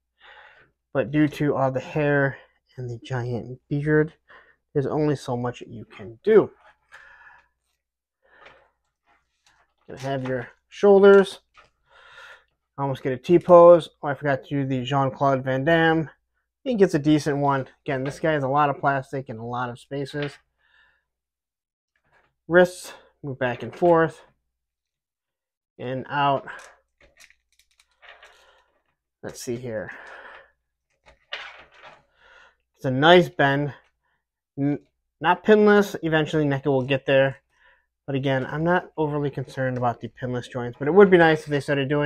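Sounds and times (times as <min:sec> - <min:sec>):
plastic rubbing against skin: 0:05.8 - 0:10.3
faint soft breaths: 0:06.6 - 0:09.9, 0:11.6 - 0:12.6, 0:29.8 - 0:30.7, 0:31.9 - 0:32.7, 0:37.4 - 0:38.0.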